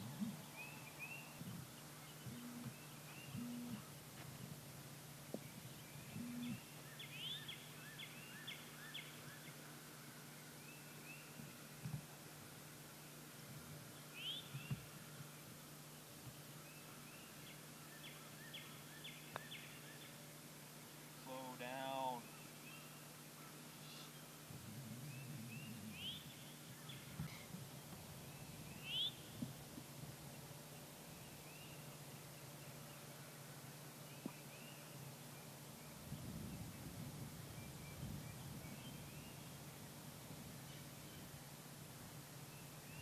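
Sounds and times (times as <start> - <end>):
birds chirping: 0.0 - 12.1, 13.8 - 43.0
steady low hum: 0.0 - 43.0.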